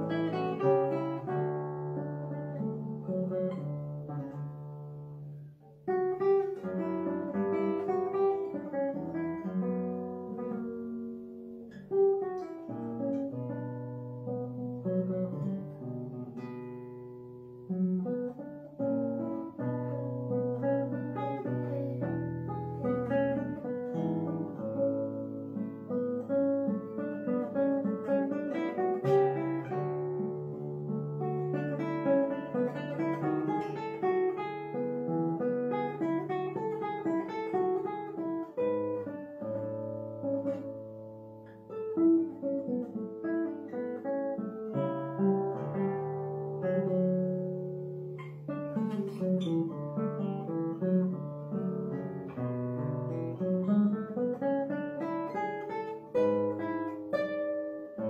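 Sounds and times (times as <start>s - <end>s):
classical guitar fingerstyle: 0.0s - 58.0s.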